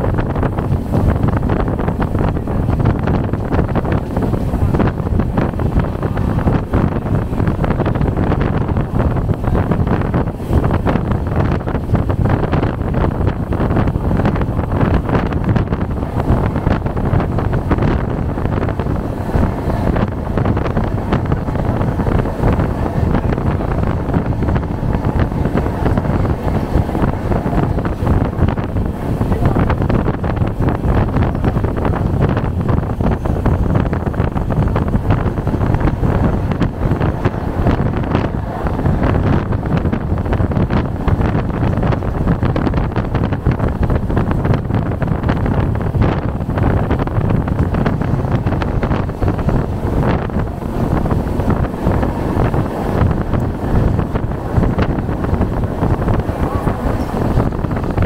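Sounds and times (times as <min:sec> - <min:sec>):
train running on track: 0:00.0 - 0:58.0
wind buffeting microphone: 0:00.0 - 0:58.0.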